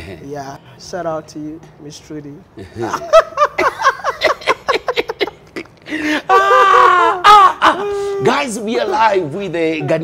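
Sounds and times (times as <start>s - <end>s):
men laughing loudly: 2.6s - 8.4s
high-pitched wailing whoops: 6.3s - 8.4s
man talking: 8.0s - 10.0s.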